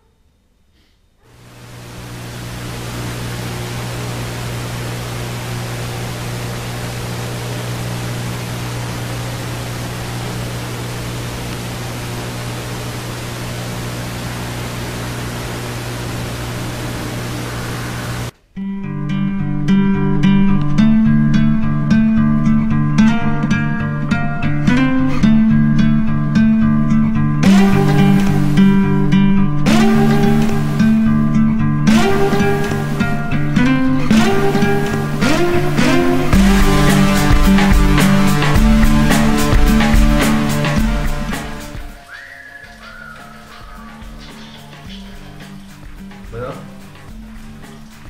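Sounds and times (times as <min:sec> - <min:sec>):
loud steady hiss: 0:01.2 - 0:18.4, 0:27.4 - 0:48.0
low steady hum: 0:01.3 - 0:18.4
plucked guitar music: 0:18.6 - 0:42.1, 0:42.8 - 0:48.0.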